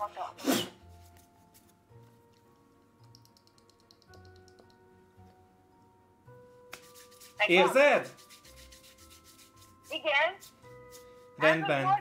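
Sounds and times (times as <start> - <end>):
hands rubbing together: 6.7 - 11.4.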